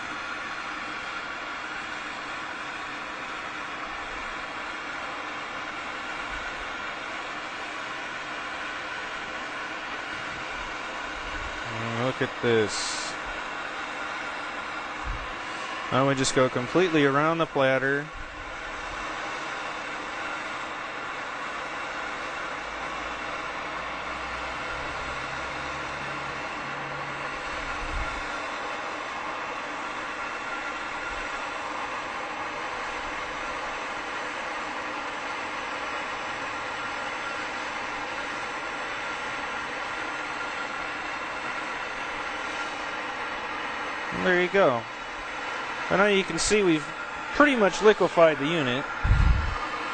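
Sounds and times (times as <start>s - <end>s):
gas torch flame hissing: 0.0s - 49.9s.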